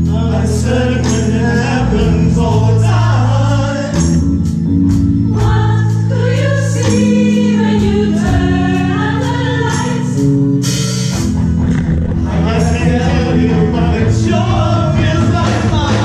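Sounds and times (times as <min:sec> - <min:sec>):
choir singing held notes: 0:00.0 - 0:04.3, 0:05.3 - 0:10.3, 0:12.2 - 0:16.0
steady percussion beat: 0:00.0 - 0:16.0
sustained bass: 0:00.0 - 0:16.0.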